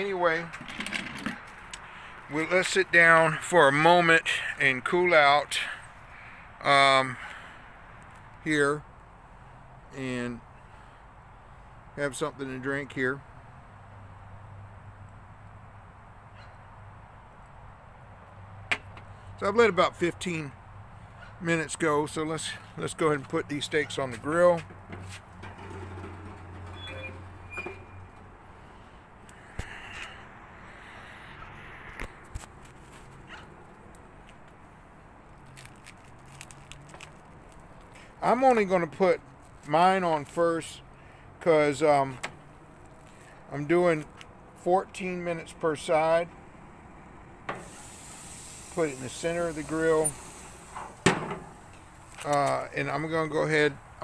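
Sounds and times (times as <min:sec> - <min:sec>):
grill lid shutting: 0:25.4 - 0:28.0, 0:50.6 - 0:51.6.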